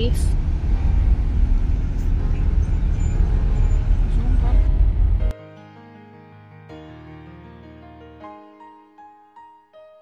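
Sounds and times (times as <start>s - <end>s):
bus engine and road rumble: 0.0s - 5.3s.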